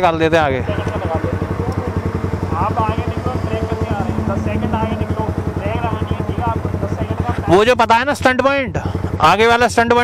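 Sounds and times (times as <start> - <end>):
motorcycle engines idling: 0.0 - 10.0.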